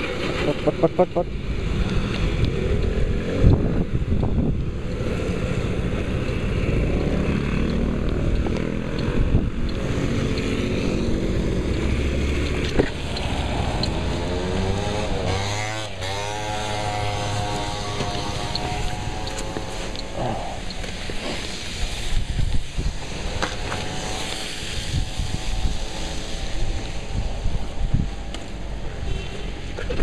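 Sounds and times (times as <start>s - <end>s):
scooter engine running: 0.0s - 27.9s.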